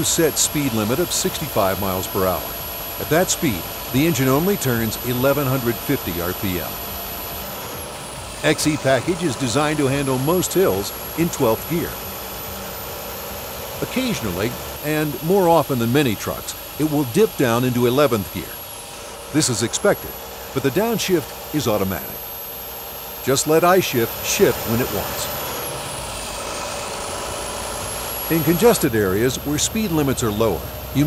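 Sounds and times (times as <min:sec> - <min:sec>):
truck engine and road noise: 0:02.0 - 0:31.0.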